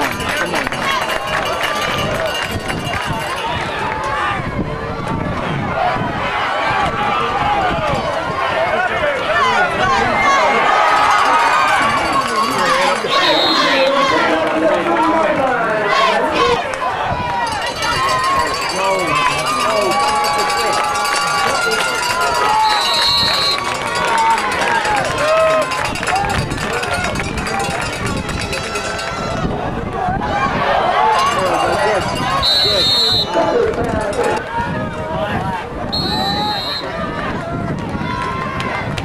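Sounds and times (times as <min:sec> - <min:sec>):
crowd talking and calling out: 0:00.0 - 0:39.0
referee's whistle blast: 0:13.1 - 0:13.9, 0:22.5 - 0:23.7, 0:32.4 - 0:33.4, 0:35.9 - 0:36.9.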